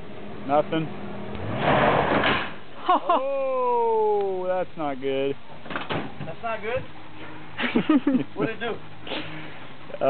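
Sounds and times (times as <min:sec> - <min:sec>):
bumper scraping: 0:00.7 - 0:02.7.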